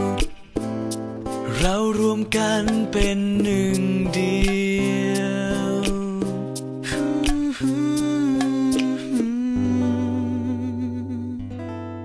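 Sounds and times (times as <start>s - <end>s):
bass and guitar accompaniment: 0.0s - 12.0s
person singing long note: 9.3s - 11.5s.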